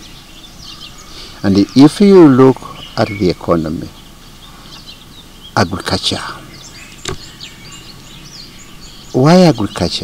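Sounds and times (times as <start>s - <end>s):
outdoor background noise: 0.0s - 10.0s
small birds chirping: 0.0s - 10.0s.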